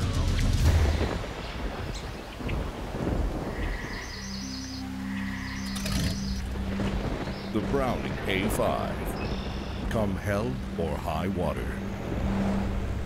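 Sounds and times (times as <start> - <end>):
rain: 0.0 - 13.0
wind: 0.0 - 13.0.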